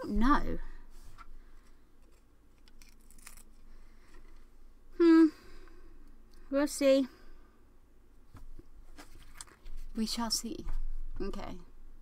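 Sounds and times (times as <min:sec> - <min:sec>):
small clicks and handling noises: 0:01.2 - 0:04.5, 0:09.0 - 0:09.8
woman humming: 0:04.9 - 0:05.5.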